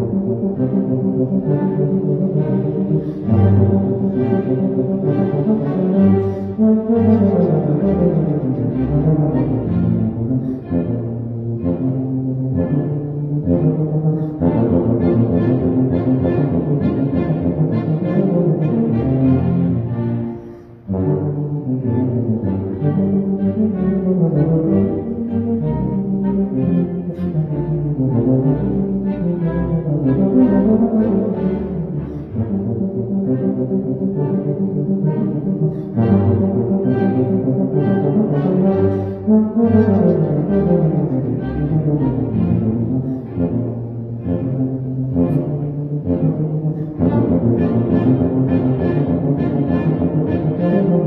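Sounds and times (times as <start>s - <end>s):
bowed strings: 0.0s - 51.0s
tuba playing: 0.0s - 51.0s
violins: 0.0s - 51.0s.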